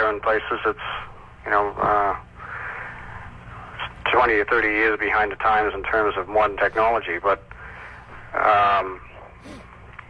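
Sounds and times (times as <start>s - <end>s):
person speaking over telephone: 0.0s - 2.3s, 3.8s - 7.5s, 8.3s - 9.0s
low hum and line hiss: 0.0s - 10.0s.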